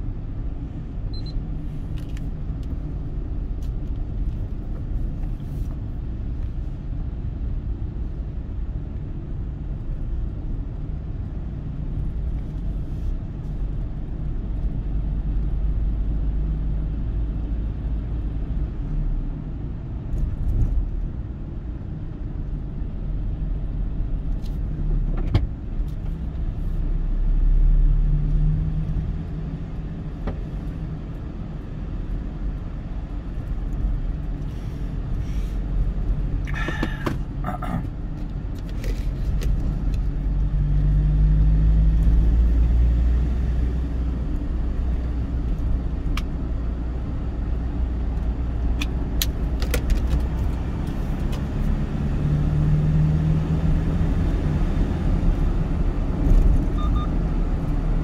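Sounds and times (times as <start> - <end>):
road and engine rumble: 0.0 - 58.0.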